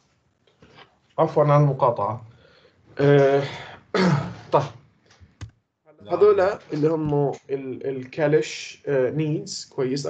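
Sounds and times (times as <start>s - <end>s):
man speaking: 1.2s - 2.3s, 3.0s - 4.8s, 6.0s - 10.0s.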